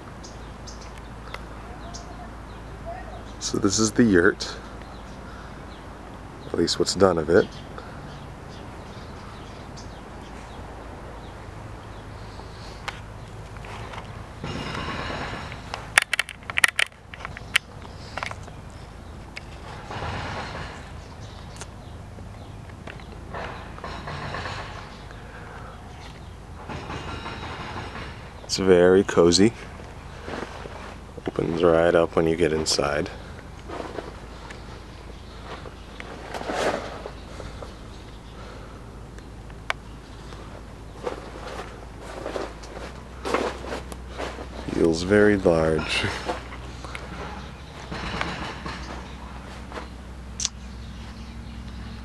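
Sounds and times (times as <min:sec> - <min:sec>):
sharp clicks and knocks: 0:12.8 - 0:18.6, 0:19.3 - 0:25.2, 0:26.0 - 0:28.6, 0:46.1 - 0:50.6
camera handling rustling: 0:15.7 - 0:18.6
soft shuffling movement: 0:29.5 - 0:32.0.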